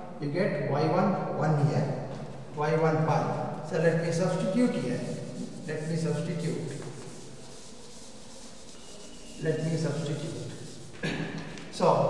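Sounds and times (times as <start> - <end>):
duster rubbing on blackboard: 3.8 - 11.9.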